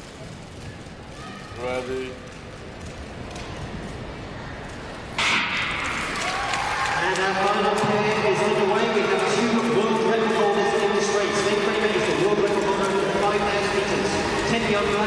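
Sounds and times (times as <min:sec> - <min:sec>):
crowd noise and voices: 0:00.0 - 0:15.0.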